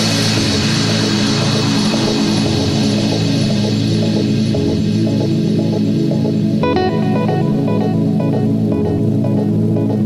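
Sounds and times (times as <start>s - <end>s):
low droning synth chord: 0.0s - 10.0s.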